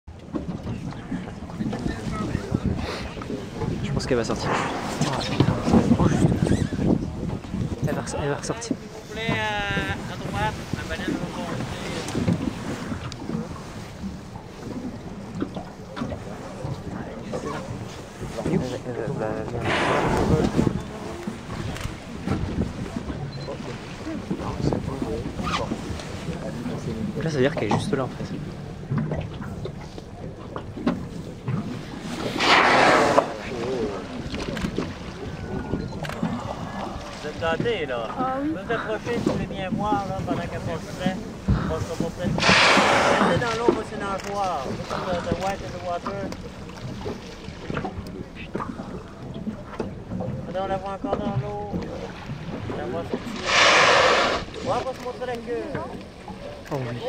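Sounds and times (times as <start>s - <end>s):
water around boat: 0.0s - 57.0s
wind rumbling on microphone: 0.1s - 57.0s.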